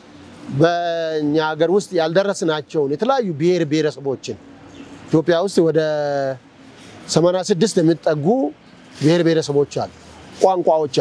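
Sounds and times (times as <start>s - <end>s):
man speaking: 0.5s - 4.5s, 5.1s - 6.4s, 7.1s - 11.0s.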